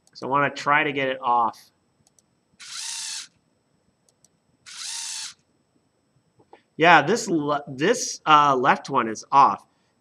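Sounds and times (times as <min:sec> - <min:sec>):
geared motor whine: 0:02.5 - 0:03.7, 0:04.6 - 0:05.5.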